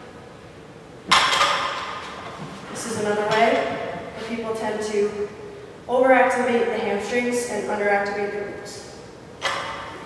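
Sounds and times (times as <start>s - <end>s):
barbell clanking on floor: 1.1s - 2.3s.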